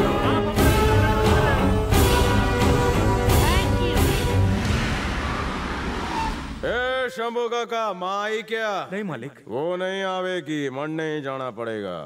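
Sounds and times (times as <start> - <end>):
man talking: 6.6 - 12.0.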